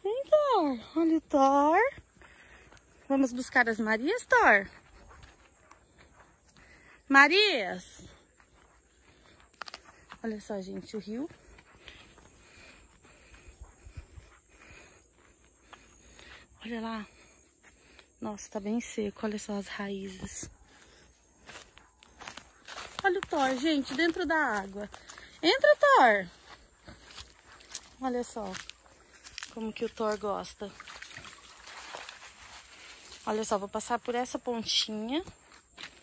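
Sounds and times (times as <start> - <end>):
footsteps on dry grass: 0.0 - 36.0
stream trickling: 29.2 - 33.3.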